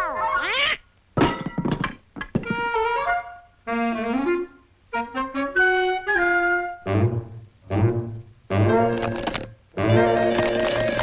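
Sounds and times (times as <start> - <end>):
cartoon duck angry squawk: 0.0 - 0.8.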